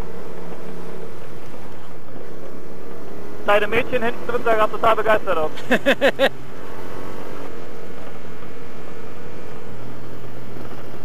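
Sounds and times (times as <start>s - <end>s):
motorcycle engine hum: 0.0s - 11.0s
burst of laughter: 5.6s - 6.3s.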